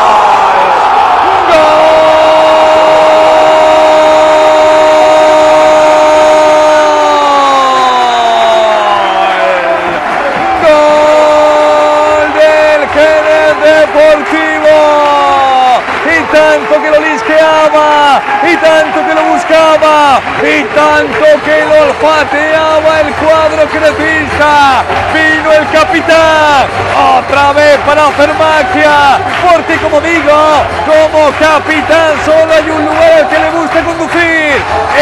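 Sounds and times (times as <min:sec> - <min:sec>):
commentator shouting goal: 0:00.0 - 0:35.0.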